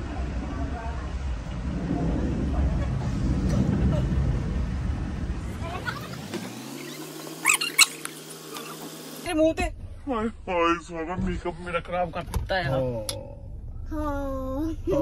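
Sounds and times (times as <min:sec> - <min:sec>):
wind rumbling on microphone: 0:00.0 - 0:06.3.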